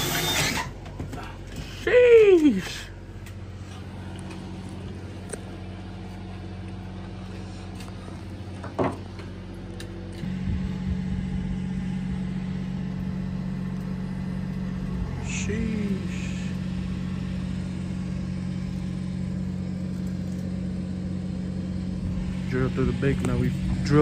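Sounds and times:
motor humming: 0.0s - 24.0s.

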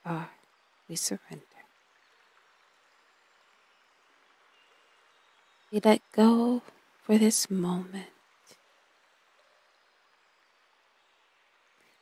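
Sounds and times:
faint rush of running water: 0.0s - 12.0s.

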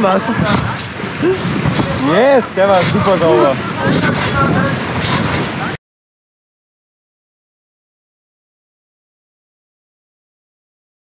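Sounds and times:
outdoor background noise: 0.0s - 5.8s
people talking: 0.0s - 5.8s.

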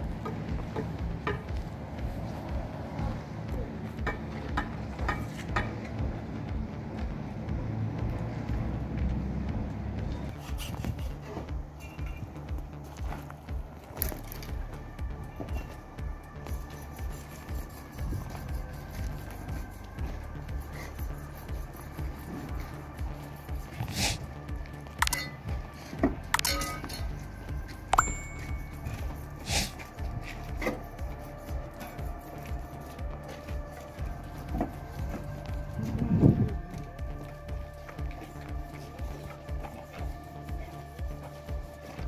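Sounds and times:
background music with beat: 0.0s - 42.0s
sharp clinks: 27.9s - 28.8s.

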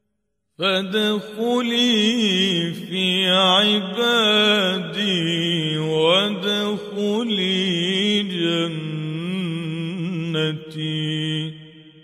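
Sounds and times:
man chanting melodically: 0.6s - 12.0s.

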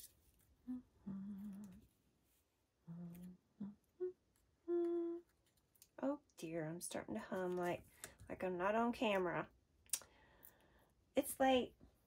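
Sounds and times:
woman humming: 0.6s - 1.9s, 2.8s - 5.3s.

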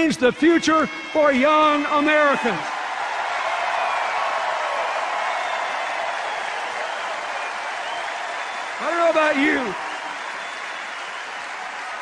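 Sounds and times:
man speaking: 0.0s - 2.7s, 8.8s - 9.8s
crowd applauding: 2.2s - 12.0s.

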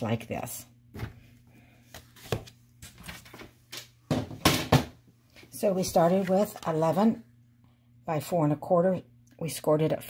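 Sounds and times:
paper rustling: 1.9s - 3.6s, 5.8s - 6.7s.

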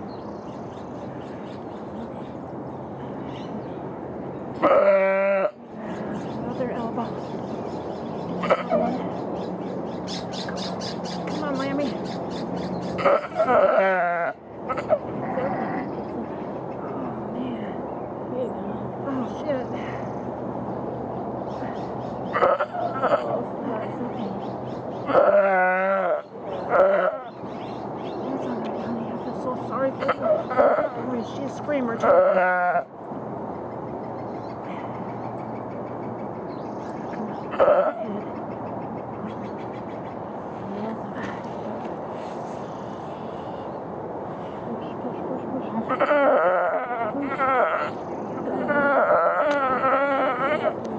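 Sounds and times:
outdoor background hiss: 0.0s - 50.9s
ewe crying: 45.9s - 48.0s, 48.6s - 50.8s.

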